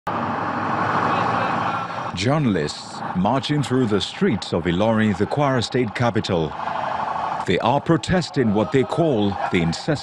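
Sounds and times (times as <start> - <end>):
crowd voices: 0.2 - 10.0.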